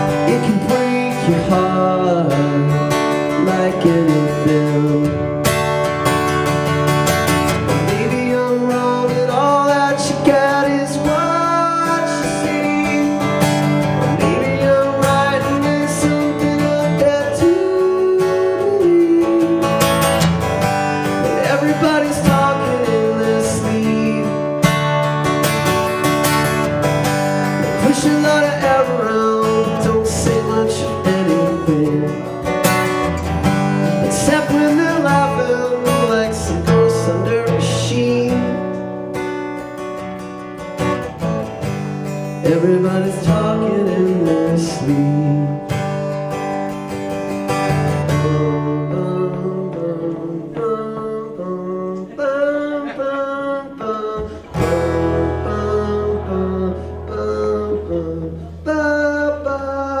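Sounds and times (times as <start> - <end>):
man singing wordless melody: 0.0 - 5.4, 7.7 - 25.0, 27.5 - 32.6, 33.7 - 39.0, 42.3 - 46.0, 47.8 - 60.0
acoustic guitar strumming: 0.0 - 60.0.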